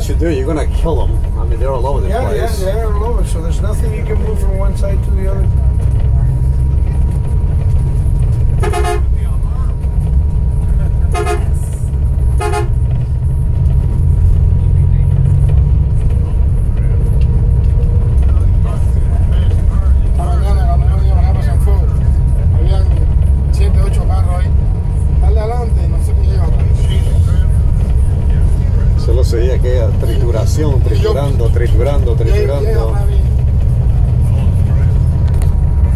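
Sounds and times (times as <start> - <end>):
low rumble of engine and tyres: 0.0 - 35.9
car horn toots: 8.6 - 9.2, 11.1 - 11.7, 12.3 - 12.9.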